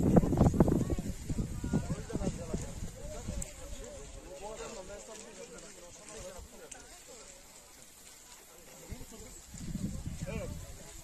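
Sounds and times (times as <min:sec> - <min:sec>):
dry plants rustling and knocking: 0:00.0 - 0:11.0
faint voices talking: 0:00.0 - 0:11.0.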